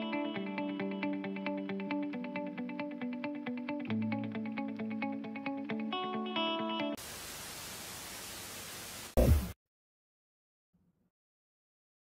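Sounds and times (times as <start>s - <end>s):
television static hiss: 7.0s - 9.5s
loud burst dropping in pitch: 9.2s - 9.6s.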